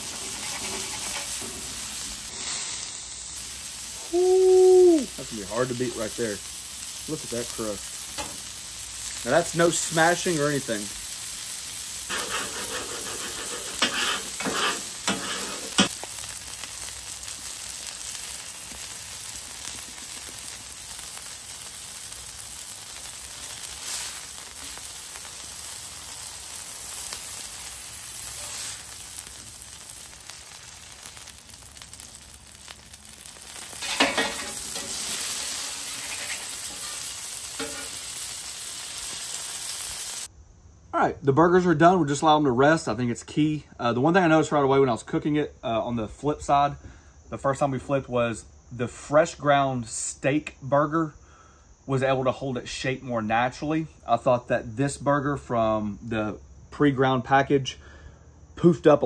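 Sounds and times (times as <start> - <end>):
metal spatula scraping steel: 0.0 - 1.6, 12.1 - 15.9, 33.8 - 38.0
burger patties sizzling on griddle: 0.0 - 40.3.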